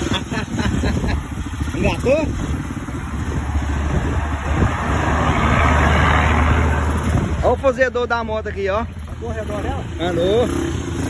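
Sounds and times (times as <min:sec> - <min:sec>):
motorcycle engine running: 0:00.0 - 0:05.0, 0:06.3 - 0:11.0.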